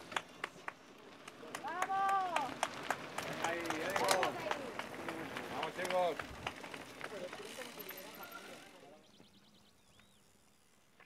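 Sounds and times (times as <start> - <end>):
sharp claps or clicks: 0.0 - 6.6
bikes riding on gravel: 0.0 - 11.0.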